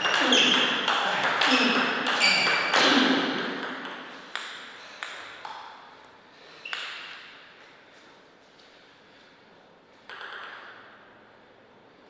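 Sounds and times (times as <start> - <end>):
table tennis ball bouncing: 0.0 - 6.0, 6.6 - 7.4, 10.0 - 11.0.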